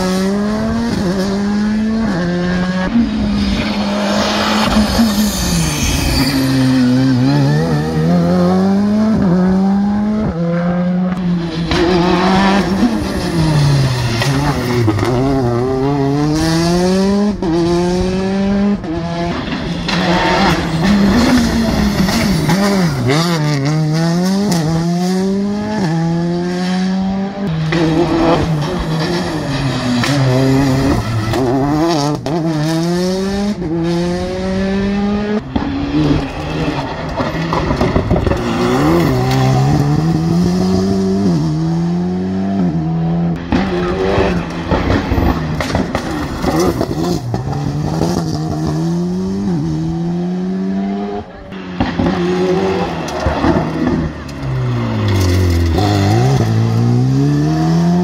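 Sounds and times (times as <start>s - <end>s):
rally car engine revving hard: 0.0s - 5.3s, 6.5s - 58.0s.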